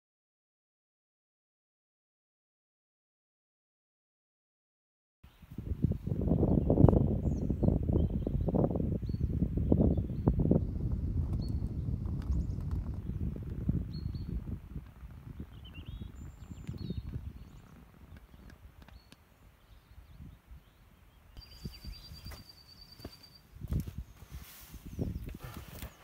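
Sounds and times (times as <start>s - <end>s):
small birds chirping: 5.2s - 26.0s
wind rumbling on microphone: 5.3s - 26.0s.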